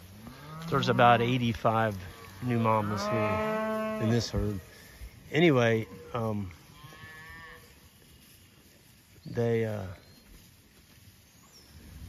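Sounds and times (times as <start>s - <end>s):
cow mooing: 0.2s - 1.4s, 2.0s - 4.4s.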